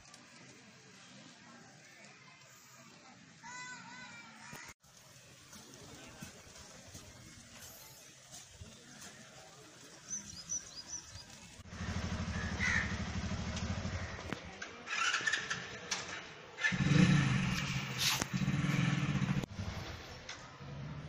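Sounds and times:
small birds chirping: 8.8s - 11.7s
motorcycle engine running: 11.1s - 14.4s, 16.7s - 20.0s.

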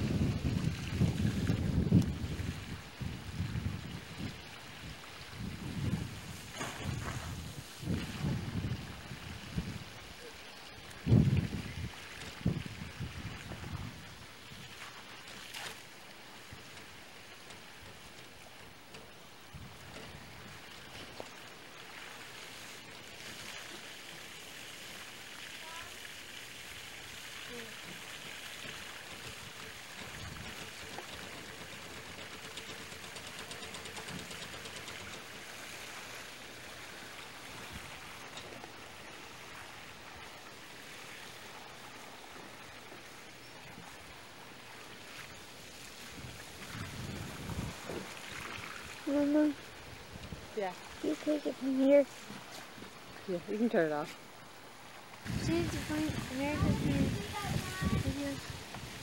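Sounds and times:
water spraying from hose: 0.0s - 59.0s.

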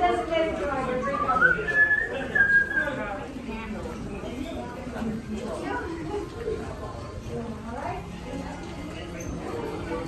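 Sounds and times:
voices talking: 0.7s - 7.6s.

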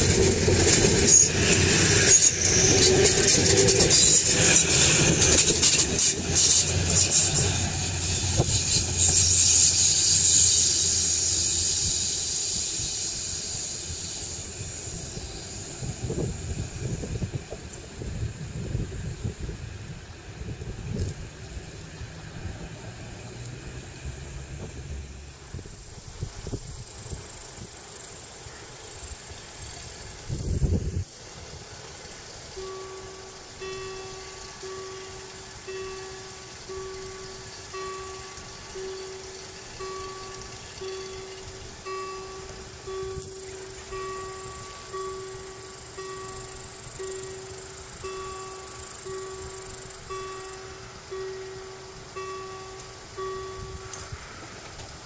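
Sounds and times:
level crossing warning bell: 32.5s - 54.5s.

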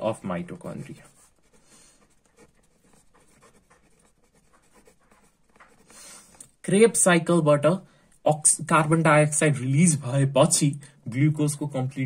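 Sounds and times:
marker scratching on paper: 0.0s - 6.4s.

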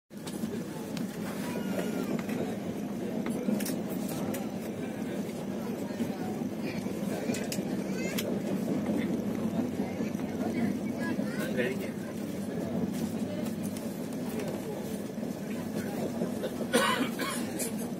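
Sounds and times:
train wheels rumbling on rails: 0.1s - 17.9s.

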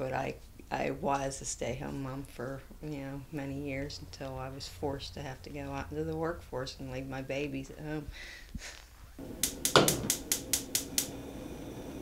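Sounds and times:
gas burner catching: 9.2s - 12.0s
stove igniter clicking: 9.2s - 12.0s.

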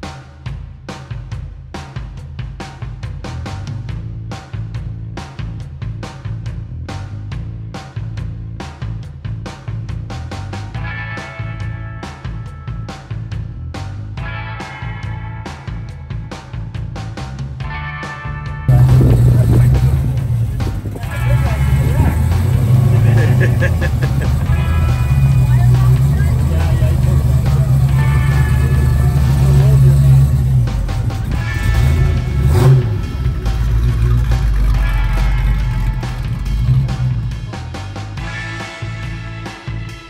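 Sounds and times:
engine running loudly: 18.7s - 37.8s.

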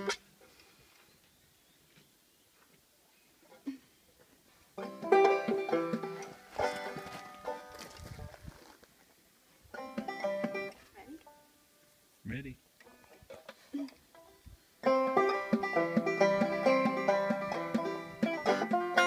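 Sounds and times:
banjo strumming: 0.0s - 0.2s, 4.7s - 8.1s, 9.7s - 11.5s, 13.0s - 19.0s.

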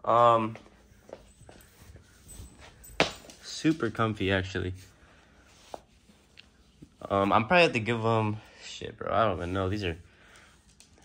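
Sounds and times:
soft footsteps on laminate floor: 0.5s - 4.8s.

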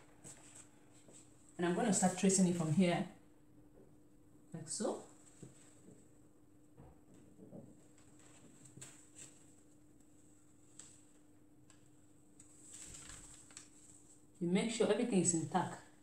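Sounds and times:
low steady hum: 0.0s - 16.0s
faint paper rustle: 7.8s - 14.4s.

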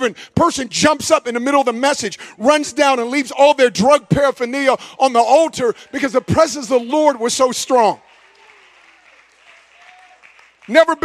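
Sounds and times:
faint applause: 8.0s - 11.0s.

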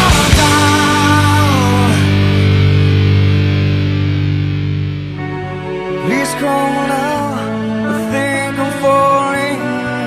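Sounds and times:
distorted electric guitar chord: 0.0s - 7.9s.

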